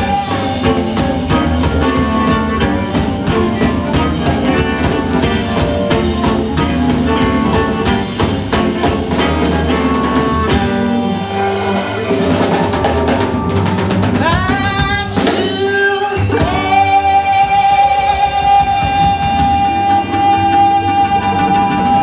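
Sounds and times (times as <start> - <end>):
blues band playing: 0.0 - 22.0.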